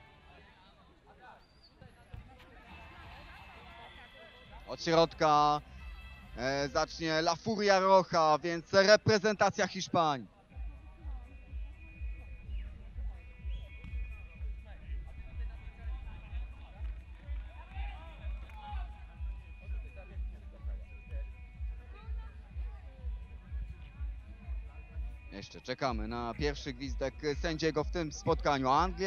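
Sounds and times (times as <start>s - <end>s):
faint voices: 10.1s - 27.2s
music with bass beat: 10.6s - 25.3s, 25.9s - 29.0s.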